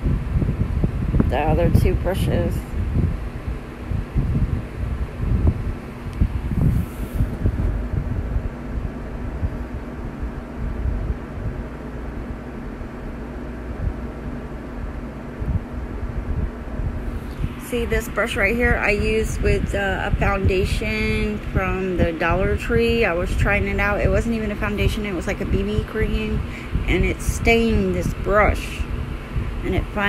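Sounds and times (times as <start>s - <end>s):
faint steady hum: 0.0s - 30.0s
microphone rumble: 0.0s - 30.0s.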